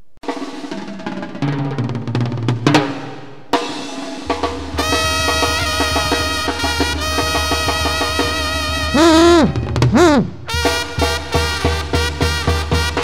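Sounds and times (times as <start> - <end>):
brass band playing: 4.8 - 13.0
tuba notes: 7.1 - 10.9.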